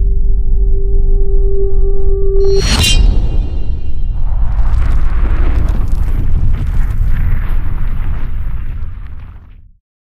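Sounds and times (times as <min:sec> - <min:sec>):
deep rumbling boom: 0:02.4 - 0:09.8.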